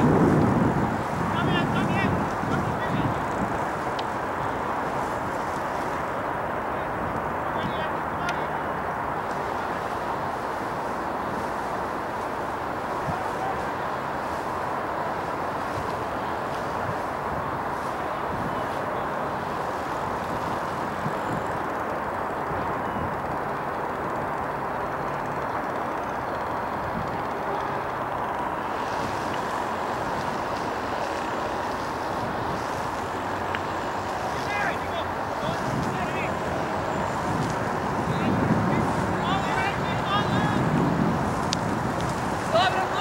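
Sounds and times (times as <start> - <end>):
distant voices calling out: 0.0 - 43.0
outdoor background noise: 0.0 - 43.0.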